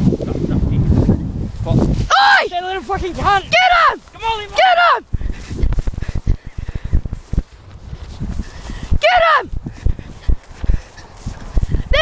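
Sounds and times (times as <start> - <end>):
running footsteps on grass: 0.0 - 12.0
wind on microphone: 0.0 - 12.0
high yelp: 2.1 - 5.1, 8.9 - 9.6
microphone handling thuds: 5.0 - 12.0.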